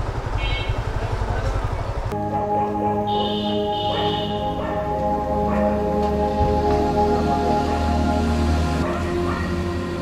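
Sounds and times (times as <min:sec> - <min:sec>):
motorcycle engine idling: 0:00.0 - 0:05.1.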